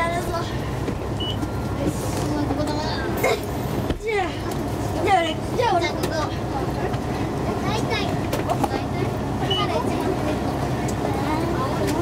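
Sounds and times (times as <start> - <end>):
bus engine low rumble: 0.0 - 12.0
faint passenger voices: 0.0 - 12.0.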